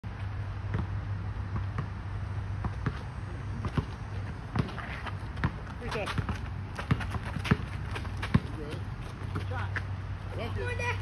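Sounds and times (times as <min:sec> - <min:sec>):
steady low hum: 0:00.0 - 0:11.0
basketball bouncing on asphalt: 0:00.2 - 0:10.0.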